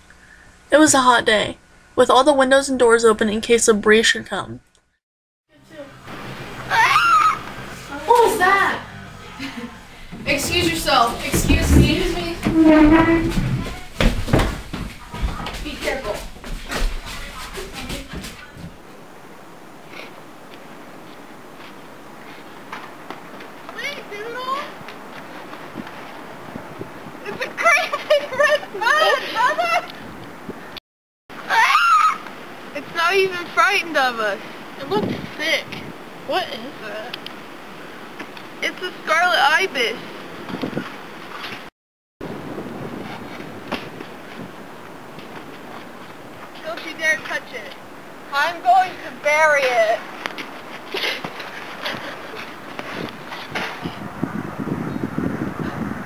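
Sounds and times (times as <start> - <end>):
faint outdoor background hiss: 0.0 - 12.5, 18.4 - 55.0
indistinct voices: 5.6 - 13.9
wind noise on microphone: 8.8 - 18.8, 23.8 - 30.8, 32.9 - 37.1, 39.9 - 46.5, 50.1 - 56.0.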